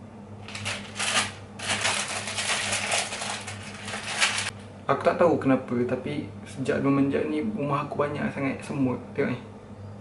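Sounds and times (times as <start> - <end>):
low steady hum: 0.0 - 10.0
plastic packaging crinkling: 0.4 - 4.5.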